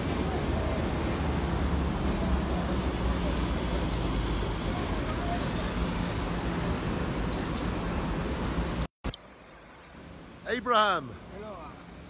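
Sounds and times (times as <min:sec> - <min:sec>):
hiss of street sound: 0:00.0 - 0:12.0
low traffic rumble: 0:00.0 - 0:12.0.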